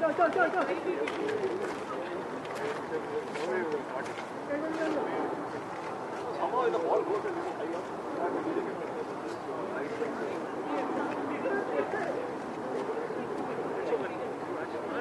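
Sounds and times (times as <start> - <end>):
people talking indistinctly: 0.0 - 15.0.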